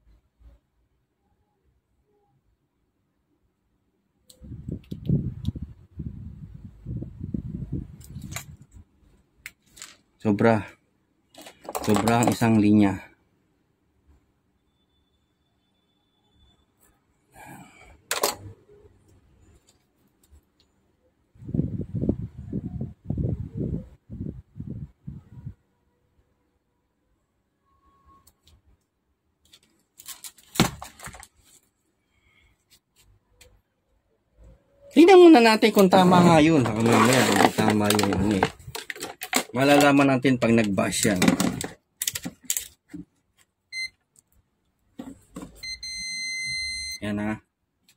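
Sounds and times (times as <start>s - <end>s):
faint handling noise: 8.0s - 10.2s, 11.3s - 12.6s, 35.6s - 43.5s
rustling and clicking: 29.4s - 31.7s, 35.8s - 40.0s.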